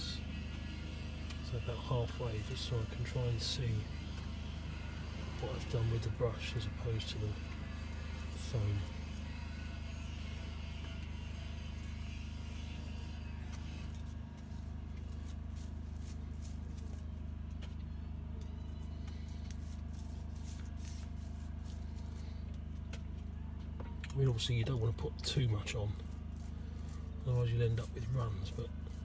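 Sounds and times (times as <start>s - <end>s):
low droning motor hum: 0.0s - 29.0s.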